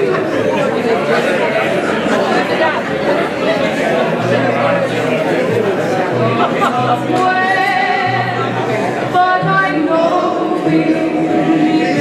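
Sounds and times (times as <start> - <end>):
hubbub of overlapping conversation: 0.0 - 12.0.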